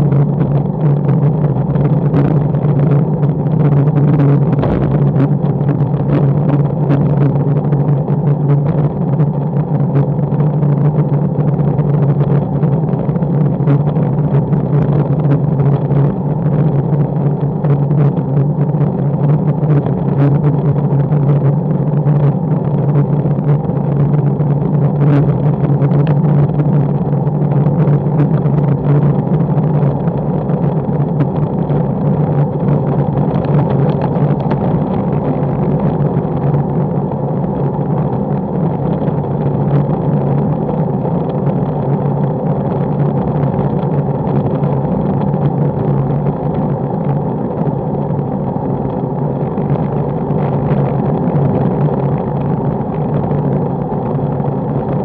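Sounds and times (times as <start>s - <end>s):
road rumble: 0.0s - 55.0s
wind rushing over microphone: 0.0s - 55.0s.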